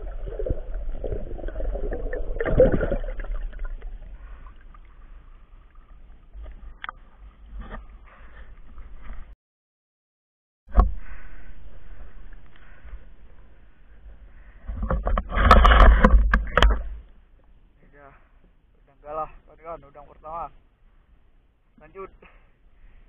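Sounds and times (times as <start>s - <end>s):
water lapping and sloshing: 0.0s - 9.3s.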